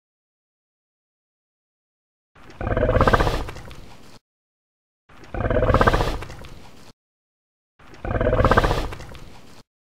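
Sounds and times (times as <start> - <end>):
dinosaur growling roar: 2.6 - 3.5, 5.3 - 6.3, 8.0 - 9.0.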